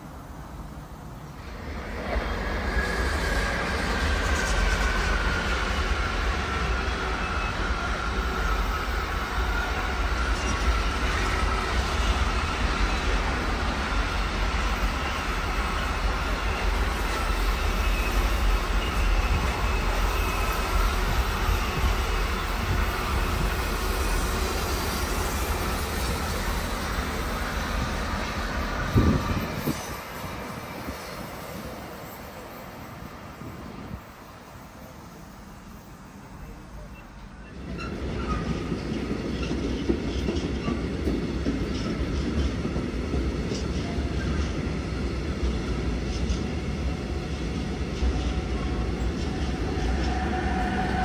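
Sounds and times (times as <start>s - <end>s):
train wheels rumbling on rail: 0.0s - 51.0s
faint high squeal: 6.6s - 12.7s, 16.3s - 23.5s, 34.8s - 38.6s.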